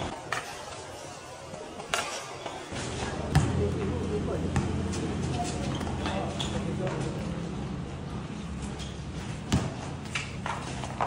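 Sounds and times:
basketball bouncing on concrete: 0:03.3 - 0:03.8, 0:09.4 - 0:11.0.

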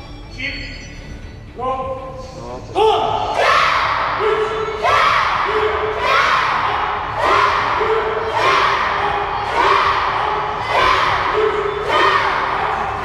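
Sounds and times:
children shouting in unison: 0:03.2 - 0:13.0.

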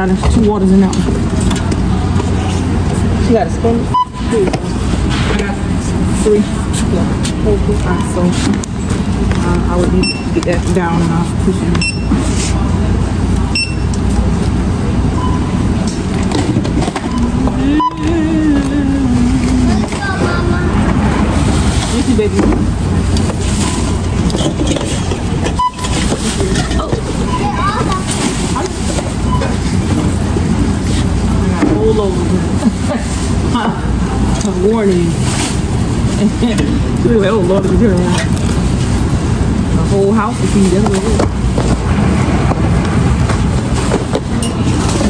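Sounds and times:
indistinct voices: 0:00.0 - 0:45.0
barcode scanner beeps: 0:03.9 - 0:04.3, 0:10.0 - 0:10.5, 0:11.7 - 0:12.2, 0:13.5 - 0:13.9, 0:15.2 - 0:15.7, 0:17.0 - 0:18.2, 0:25.5 - 0:26.1.

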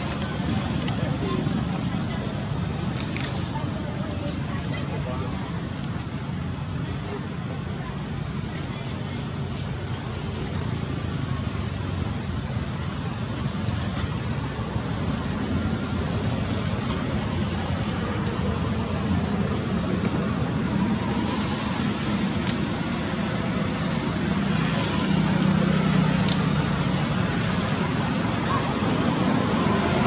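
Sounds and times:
low outdoor rumble: 0:00.0 - 0:30.0.

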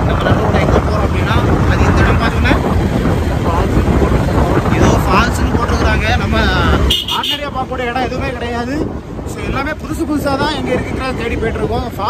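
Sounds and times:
motorcycle engine: 0:00.0 - 0:12.0
road noise: 0:00.0 - 0:12.0
wind buffeting microphone: 0:00.0 - 0:12.0.

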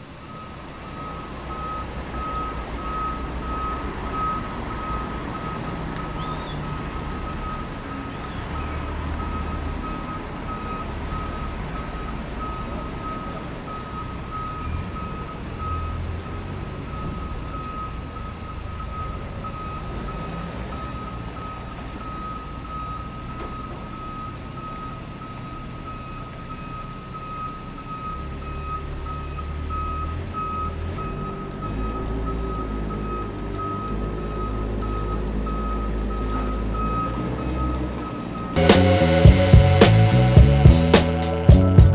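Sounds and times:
truck reversing beeper: 0:00.0 - 0:41.9
low rumble: 0:38.6 - 0:41.0.

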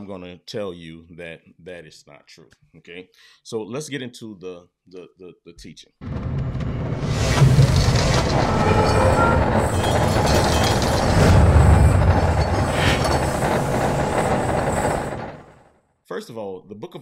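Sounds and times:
low rumble: 0:06.0 - 0:15.6
metal gears clattering: 0:06.2 - 0:15.3.

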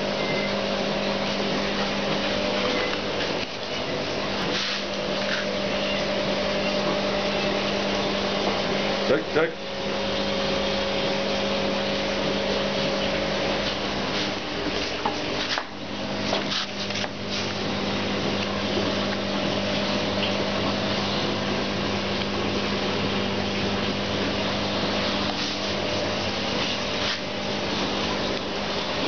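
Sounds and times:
steady machine hum: 0:00.0 - 0:29.0.

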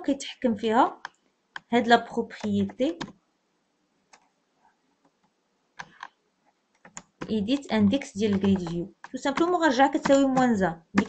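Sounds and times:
computer keyboard clicks: 0:08.3 - 0:11.0.

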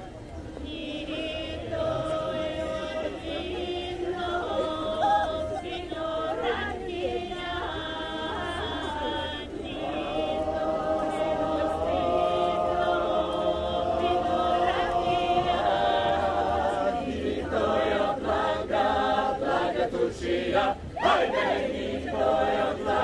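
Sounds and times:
group singing without instruments: 0:00.6 - 0:23.0.

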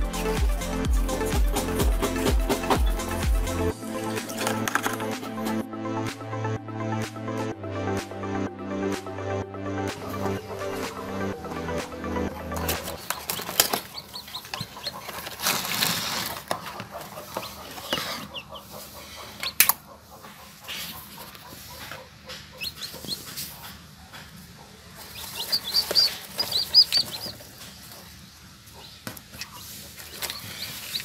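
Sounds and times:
chicks peeping: 0:00.0 - 0:05.6, 0:09.9 - 0:31.0.

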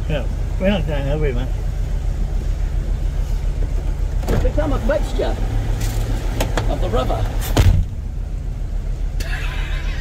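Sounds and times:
truck engine running at low revs: 0:00.0 - 0:10.0.

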